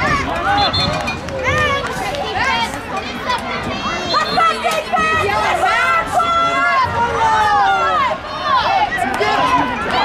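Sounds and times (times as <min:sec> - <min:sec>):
voices shouting and calling: 0:00.0 - 0:10.0.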